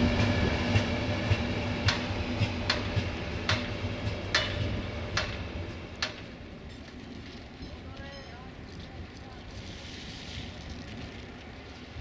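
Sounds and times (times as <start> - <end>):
wind buffeting microphone: 0.0 - 6.7
train rumbling slowly: 0.0 - 12.0.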